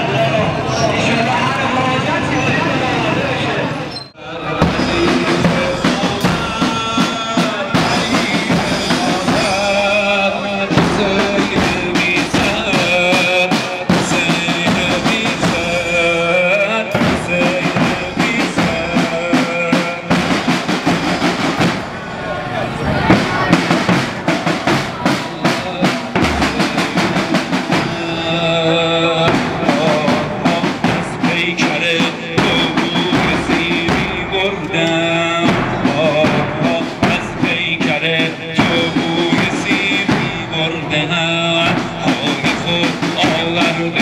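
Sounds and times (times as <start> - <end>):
men's voices from crowd: 0.0 - 44.0
street noise: 0.0 - 44.0
bass drums beating: 4.4 - 22.1, 22.8 - 44.0.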